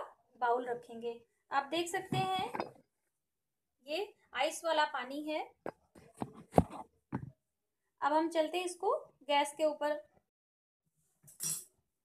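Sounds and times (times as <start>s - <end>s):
metal clink and scrape: 11.3s - 11.8s.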